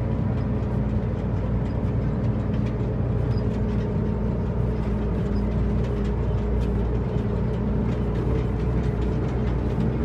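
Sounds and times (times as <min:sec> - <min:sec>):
truck diesel engine drone: 0:00.0 - 0:10.0.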